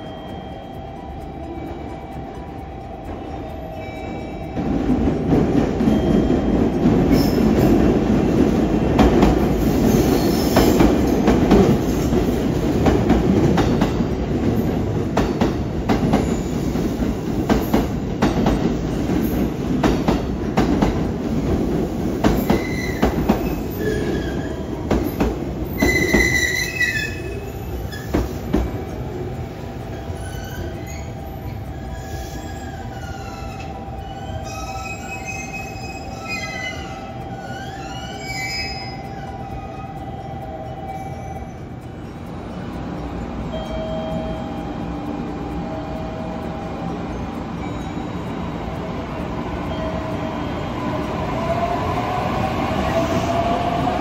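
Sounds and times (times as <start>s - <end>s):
train wheel and brake squeals: 0.0s - 21.0s, 22.1s - 54.0s
train rolling hum: 0.0s - 54.0s
train wheels clacking on rail joints: 0.0s - 54.0s.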